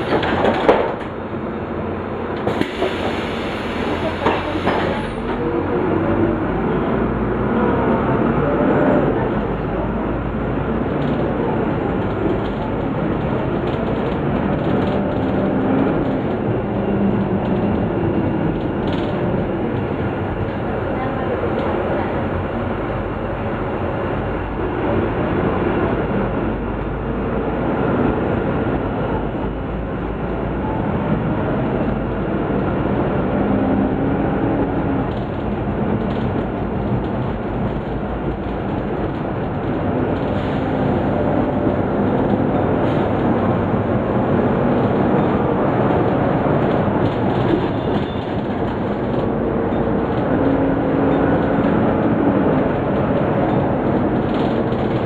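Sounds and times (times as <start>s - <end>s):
rattling of bus body: 0.0s - 6.4s, 9.2s - 23.2s, 34.6s - 55.0s
bus diesel engine: 0.0s - 55.0s
road rumble: 0.0s - 55.0s.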